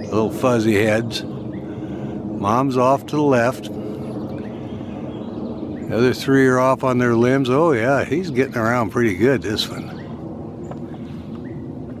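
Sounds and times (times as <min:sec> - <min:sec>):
bird chirps: 0:00.0 - 0:02.6, 0:03.8 - 0:11.7
steady low hum: 0:00.0 - 0:12.0.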